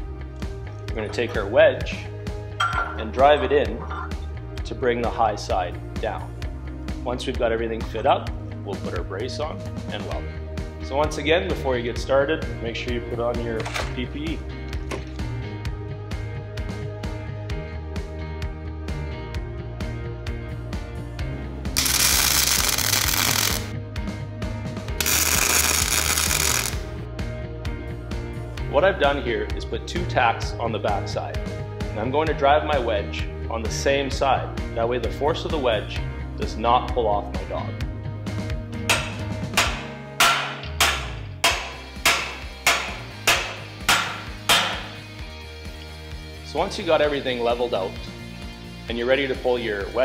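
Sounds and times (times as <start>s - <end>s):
background music: 0.0s - 50.0s
arc welding crackling hiss: 21.8s - 23.7s, 25.0s - 27.0s
hammer striking steel wedge: 38.9s - 45.0s.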